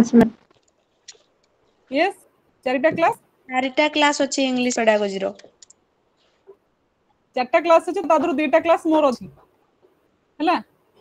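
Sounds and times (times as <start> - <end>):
woman speaking over video call: 1.9 - 5.6, 7.3 - 9.5, 10.4 - 10.7.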